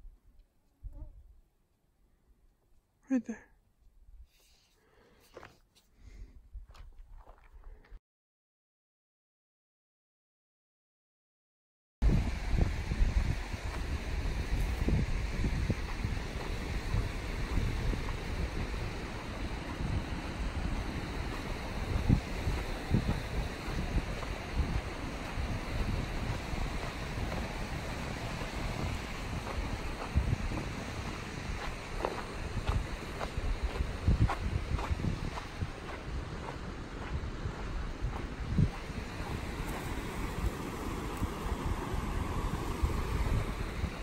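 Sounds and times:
wind buffeting microphone: 0:12.0 - 0:44.0.

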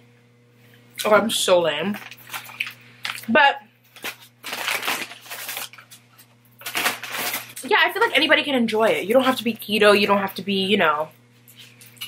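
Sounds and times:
paper wrapper crinkling: 0:01.9 - 0:03.3, 0:03.9 - 0:08.1.

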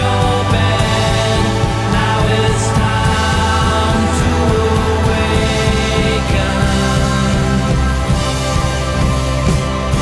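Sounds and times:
drum kit with cymbal crashes: 0:00.0 - 0:10.0
rock band playing live: 0:00.0 - 0:10.0.

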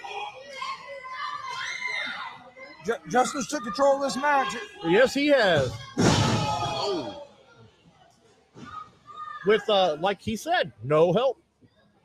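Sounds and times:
crowd voices: 0:00.0 - 0:10.9.

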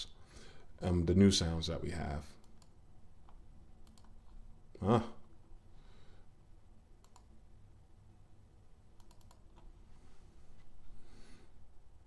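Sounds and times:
low room hum: 0:00.0 - 0:12.0
computer mouse clicks: 0:02.4 - 0:04.4, 0:07.0 - 0:07.4, 0:09.0 - 0:09.8.

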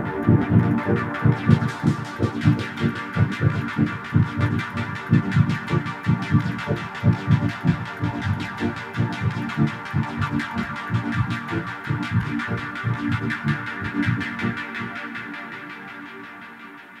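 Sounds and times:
electronic music with bass pulse: 0:00.0 - 0:17.0.

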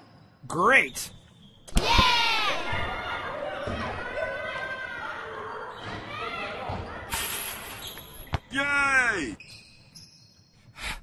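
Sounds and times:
children shouting and cheering: 0:01.8 - 0:07.1.

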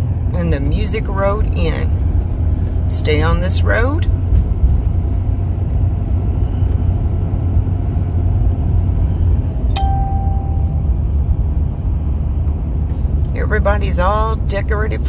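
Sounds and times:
road and engine noise in vehicle cabin: 0:00.0 - 0:15.0
beep tone: 0:09.7 - 0:10.8.

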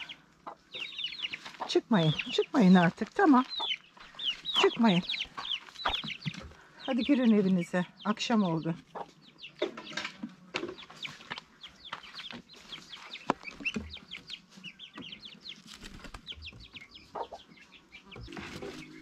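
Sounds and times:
chicks peeping: 0:00.0 - 0:19.0
hen clucking: 0:00.0 - 0:19.0.

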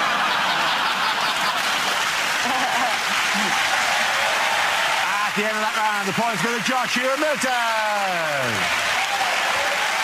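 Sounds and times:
audience laughing: 0:00.0 - 0:03.9
audience applauding: 0:00.0 - 0:10.0.

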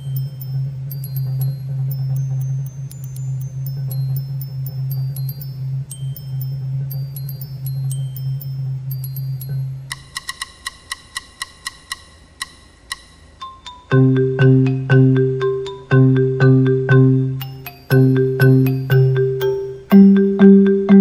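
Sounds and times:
low xylophone roll: 0:00.0 - 0:10.2, 0:13.4 - 0:21.0
glockenspiel notes: 0:00.0 - 0:21.0.

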